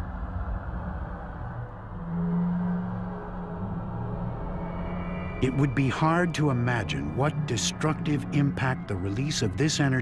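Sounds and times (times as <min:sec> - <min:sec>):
dark ambient drone music: 0:00.0 - 0:10.0.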